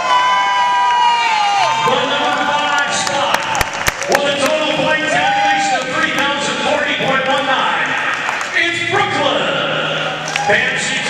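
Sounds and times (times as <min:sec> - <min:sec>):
man speaking over public address: 0:01.6 - 0:11.0.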